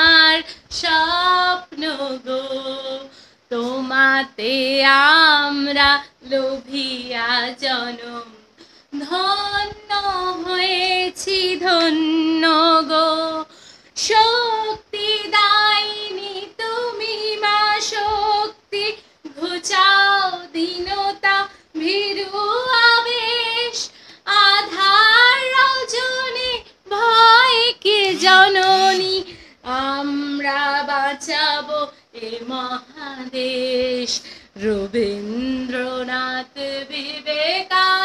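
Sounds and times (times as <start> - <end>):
woman singing unaccompanied: 0.0 - 38.0.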